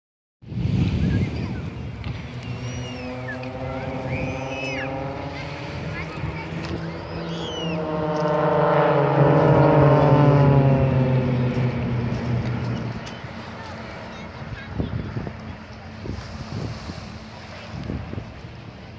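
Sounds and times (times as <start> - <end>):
propeller planes droning overhead: 0.4 - 18.9.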